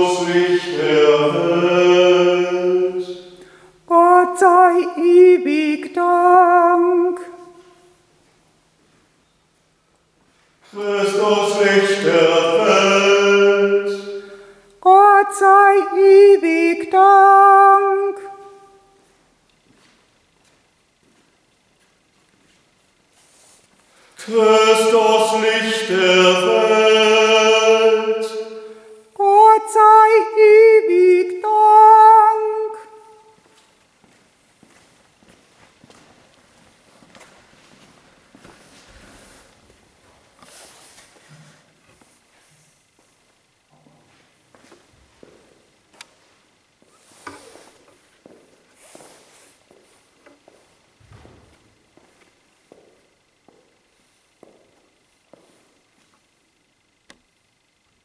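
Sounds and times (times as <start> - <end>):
solo voice chanting: 0.0 - 8.0, 10.6 - 19.0, 24.2 - 33.4.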